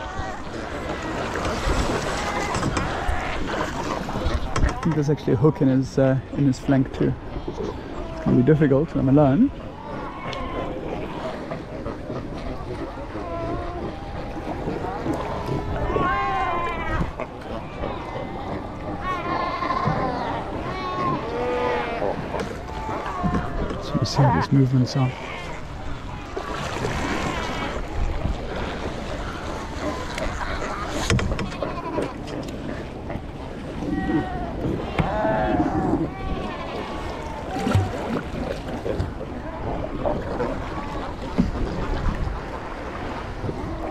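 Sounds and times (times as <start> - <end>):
seals bleating: 0.0 - 41.8
water noise: 0.0 - 43.9
paddle knocks: 0.7 - 5.0, 22.1 - 24.0, 30.0 - 32.7, 33.3 - 39.8.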